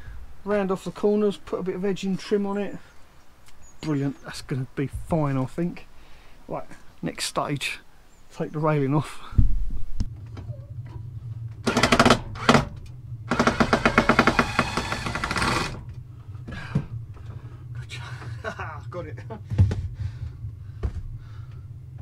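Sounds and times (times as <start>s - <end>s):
steady low hum: 0.0s - 22.0s
power driver rattling: 11.6s - 16.0s.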